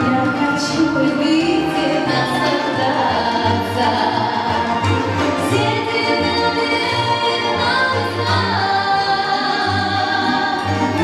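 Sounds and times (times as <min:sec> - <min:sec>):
woman singing into a microphone: 0:00.0 - 0:11.0.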